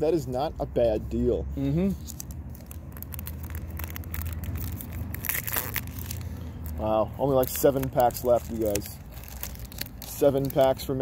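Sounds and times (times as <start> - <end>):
low steady rumble: 0.0 - 11.0
plastic wrapper crinkling and tearing: 2.0 - 11.0.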